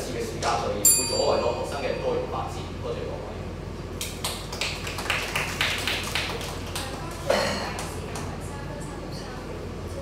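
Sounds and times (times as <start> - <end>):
people clapping: 4.0 - 8.4.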